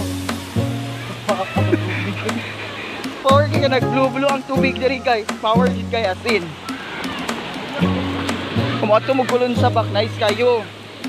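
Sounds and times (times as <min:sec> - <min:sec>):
song with bass and steady beat: 0:00.0 - 0:11.0.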